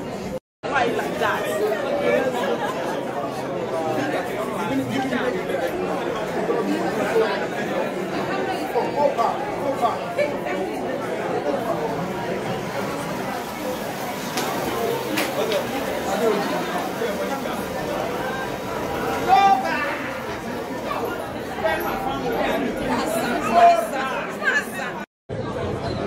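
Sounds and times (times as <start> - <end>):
crowd chatter: 0.0 - 26.0.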